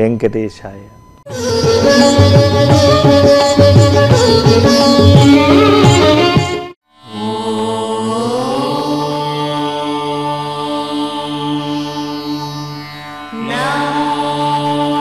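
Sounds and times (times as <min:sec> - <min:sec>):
steady drone: 0:00.1 - 0:06.3
chant-like mantra singing: 0:07.1 - 0:12.7, 0:13.3 - 0:15.0.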